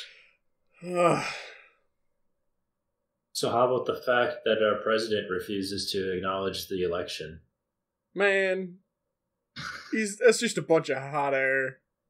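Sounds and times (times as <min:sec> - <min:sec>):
man sighing and laughing: 0:00.8 - 0:01.8.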